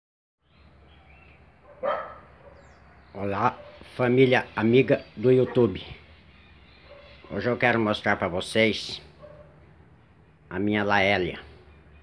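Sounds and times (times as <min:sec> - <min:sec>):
dog barking: 0:01.6 - 0:03.9, 0:06.8 - 0:07.4, 0:09.2 - 0:09.6.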